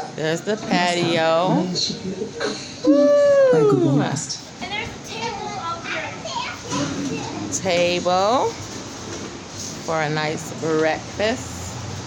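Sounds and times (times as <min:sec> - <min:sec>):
children talking and playing: 0:00.0 - 0:12.0.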